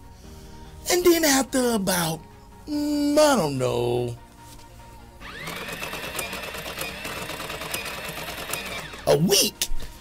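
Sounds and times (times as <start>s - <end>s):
machine-like whirring clatter: 5.3s - 9.1s.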